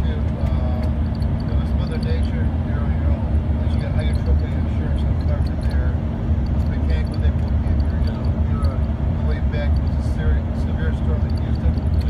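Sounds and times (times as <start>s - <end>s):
jet engine rumble in cabin: 0.0s - 12.0s.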